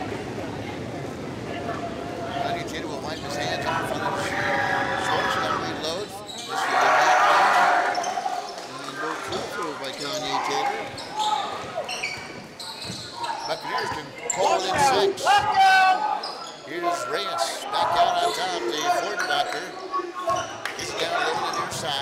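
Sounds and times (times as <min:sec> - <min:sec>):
people shouting in a gym: 0:14.4 - 0:16.4.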